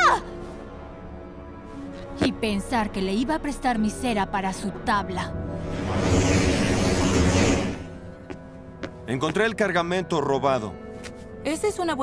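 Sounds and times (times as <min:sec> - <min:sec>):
loud whooshing swell: 0:05.4 - 0:08.2.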